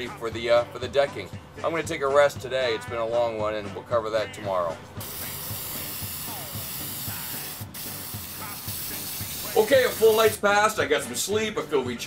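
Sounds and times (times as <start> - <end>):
aerosol spray can hissing: 5.0 - 10.4.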